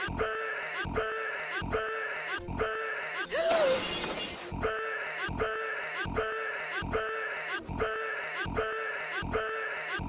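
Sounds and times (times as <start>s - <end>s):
looping movie audio: 0.0s - 10.0s.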